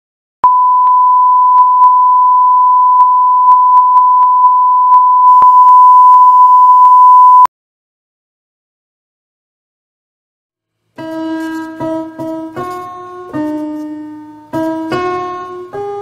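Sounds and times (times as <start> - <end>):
electronic test tone beep: 0.4 - 7.5.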